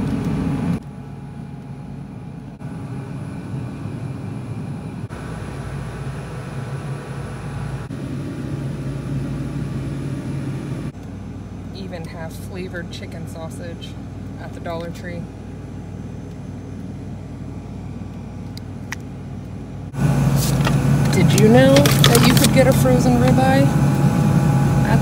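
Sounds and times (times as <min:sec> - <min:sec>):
indoor store hum: 0:00.0 - 0:25.0.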